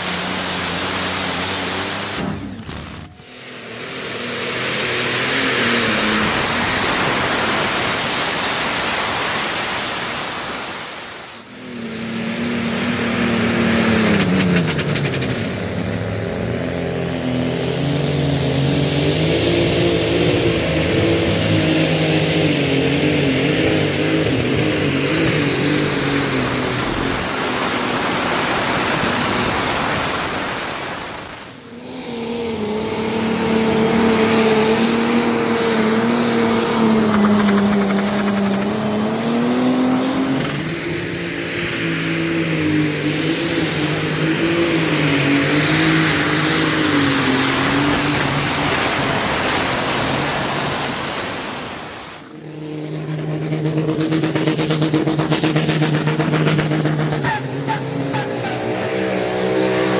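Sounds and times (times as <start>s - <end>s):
high whine: 0.0s - 16.8s, 17.5s - 53.5s
tractor engine at high revs: 0.0s - 59.9s.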